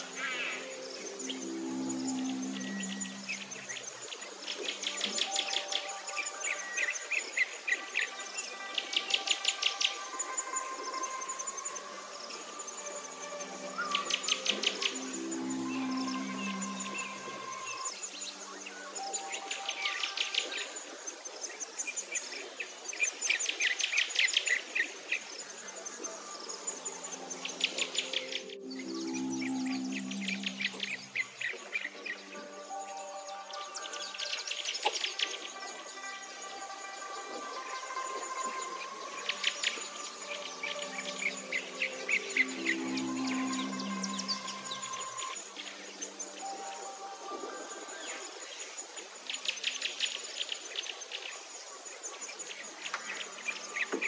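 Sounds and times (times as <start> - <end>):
high chirping trills: 0.0 - 21.3, 25.4 - 48.8
soft music of held notes: 0.0 - 54.0.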